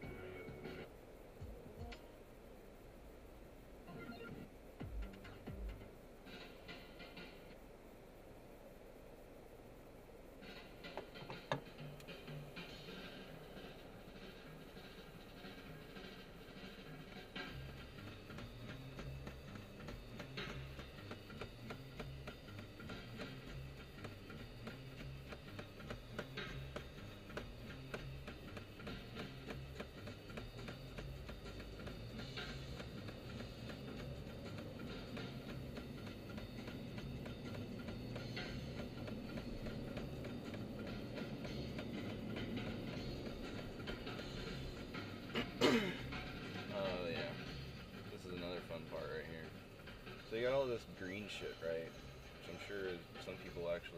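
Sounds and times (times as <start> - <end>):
music from car stereo: 0.0 - 2.3, 3.9 - 7.9, 10.2 - 53.9
road and engine noise: 5.9 - 53.7.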